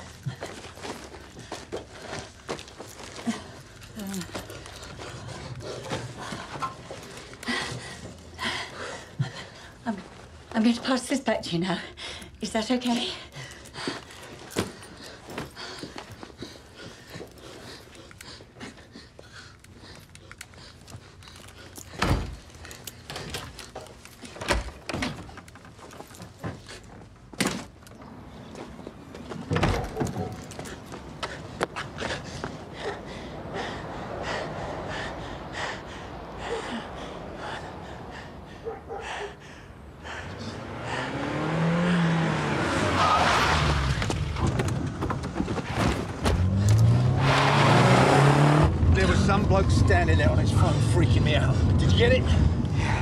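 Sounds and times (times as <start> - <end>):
shuffling footsteps: 0.0 - 11.0
wooden door opening and shutting: 24.4 - 25.5, 29.4 - 30.4
car engine revving: 40.3 - 44.9, 46.2 - 52.7.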